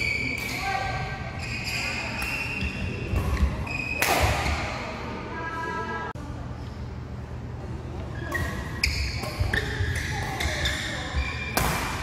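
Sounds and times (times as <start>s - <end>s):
shoes squeaking on court floor: 0.0s - 4.8s, 8.0s - 12.0s
racket hitting shuttlecock: 11.5s - 12.0s.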